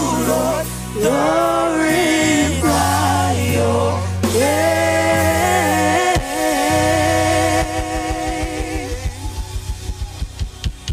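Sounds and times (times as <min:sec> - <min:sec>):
gospel band held chord: 0:00.0 - 0:10.4
fast low beat: 0:04.4 - 0:10.9.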